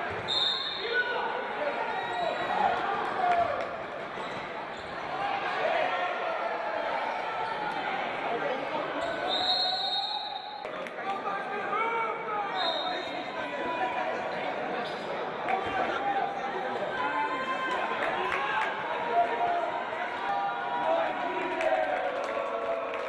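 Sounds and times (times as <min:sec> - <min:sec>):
referee's whistle: 0:00.2 - 0:01.1, 0:09.0 - 0:10.7, 0:12.5 - 0:13.3.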